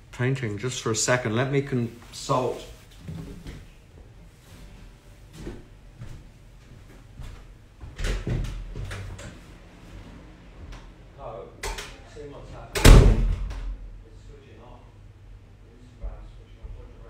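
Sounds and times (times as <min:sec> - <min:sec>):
door banging: 0:12.8 - 0:13.8.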